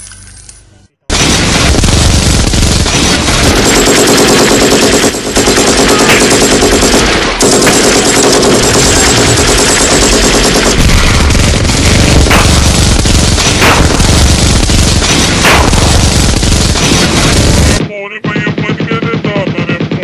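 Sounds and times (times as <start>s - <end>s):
machine gun fire: 1.1s - 20.0s.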